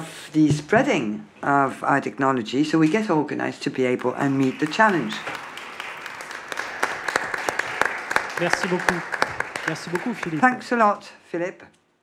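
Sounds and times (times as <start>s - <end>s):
audience applauding: 4.0s - 11.0s.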